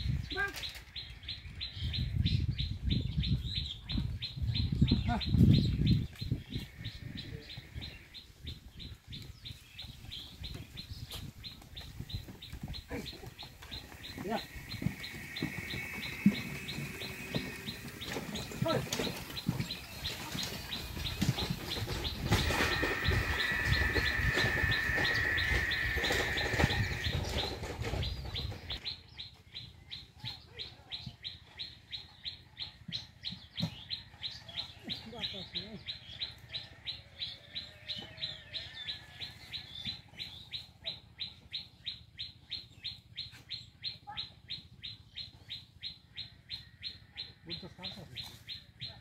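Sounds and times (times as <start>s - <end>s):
cart wheels rumbling: 11.8s - 28.8s
high repeating chirp: 13.7s - 28.8s
high drawn-out squeal: 14.0s - 19.2s, 21.0s - 28.0s.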